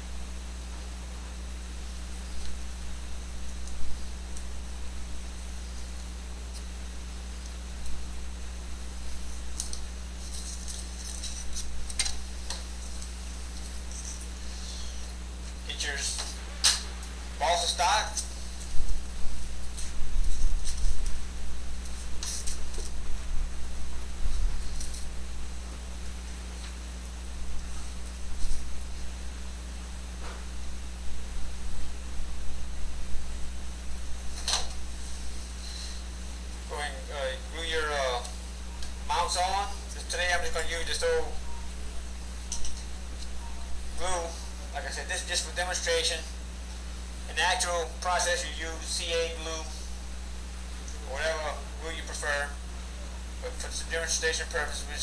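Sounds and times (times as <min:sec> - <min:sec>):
low electrical hum: 0:00.0 - 0:55.0.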